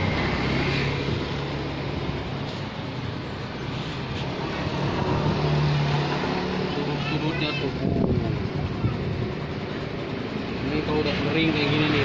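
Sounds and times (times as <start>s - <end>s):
engine passing by: 0.0s - 12.0s
traffic rumble: 0.0s - 12.0s.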